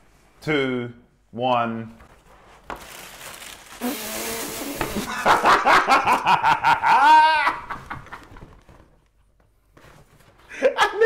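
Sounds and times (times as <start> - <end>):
cardboard box rustling: 2.6 - 3.8
man laughing: 5.0 - 8.4, 10.5 - 11.0.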